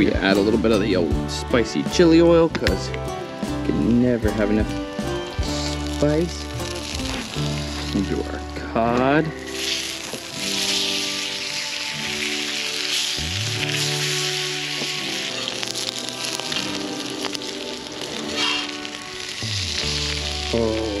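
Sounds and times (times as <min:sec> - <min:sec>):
background music: 0:00.0 - 0:21.0
food sizzling on a griddle: 0:02.0 - 0:21.0.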